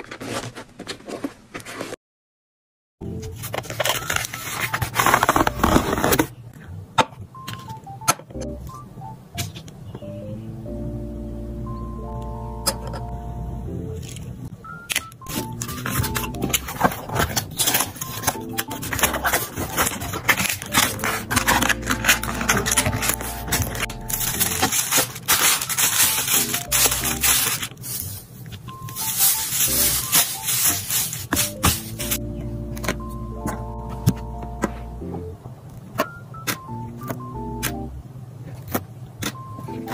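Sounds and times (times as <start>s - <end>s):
cardboard box scraping and crinkling: 0.0s - 2.0s, 3.4s - 6.3s, 15.3s - 28.3s, 28.9s - 32.2s
background music: 3.0s - 6.3s, 7.2s - 28.1s, 28.7s - 38.1s, 39.2s - 39.9s
tissue paper rustling: 3.4s - 6.3s, 15.3s - 32.2s.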